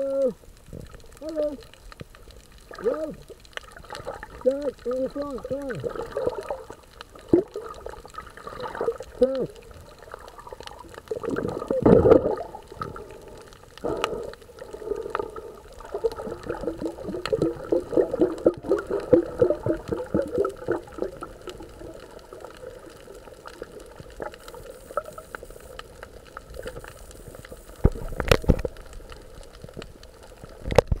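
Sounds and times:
underwater sloshing and bubbling: 0.0s - 31.0s.

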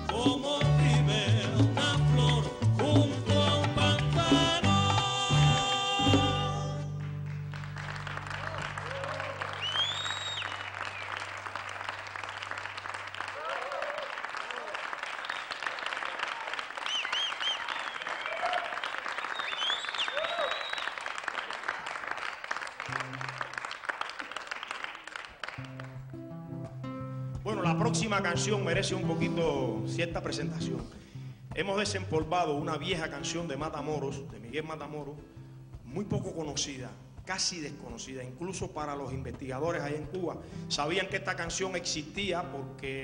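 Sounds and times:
audience applauding: 6.9s - 26.2s
whistles and shouts: 8.8s - 11.3s, 15.2s - 15.8s, 16.8s - 21.2s.

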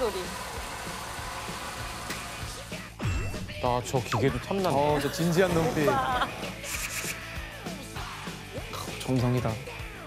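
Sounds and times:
fat sizzling and crackling: 5.1s - 7.3s.

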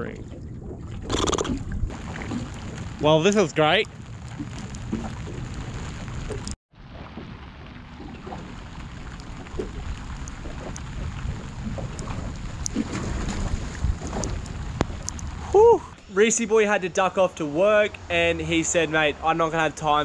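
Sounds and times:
wind rumbling on microphone: 0.0s - 16.1s
light ticks of rain: 1.9s - 6.6s, 8.0s - 12.9s, 13.9s - 15.6s.

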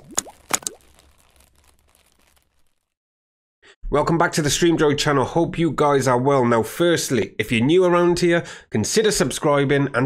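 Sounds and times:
quick pops: 0.0s - 1.8s.

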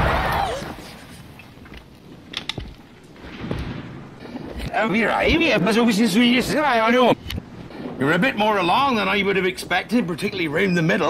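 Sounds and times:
man talking: 8.0s - 11.0s.

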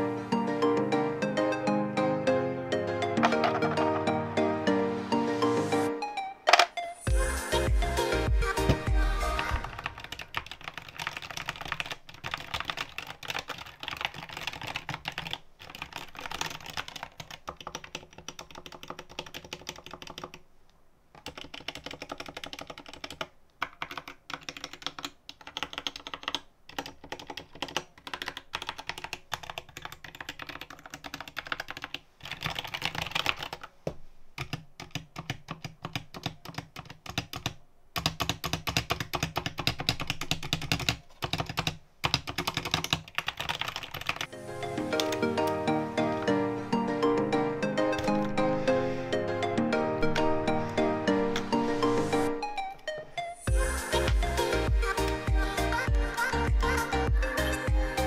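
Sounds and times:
music: 0.0s - 10.2s, 44.3s - 58.0s.

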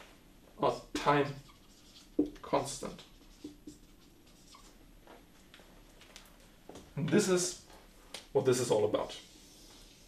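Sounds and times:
marker writing on whiteboard: 0.7s - 4.8s, 8.9s - 10.0s
squeaky marker strokes: 0.7s - 4.8s, 9.0s - 10.0s.

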